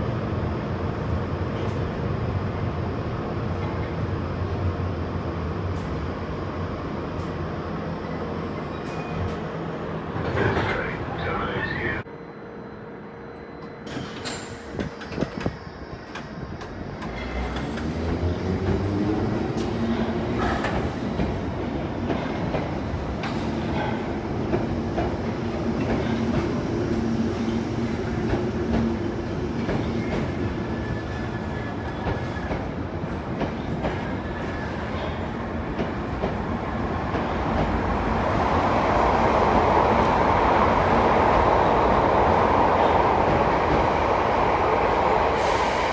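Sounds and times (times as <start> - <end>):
rushing rail noise: 0.0 - 45.9.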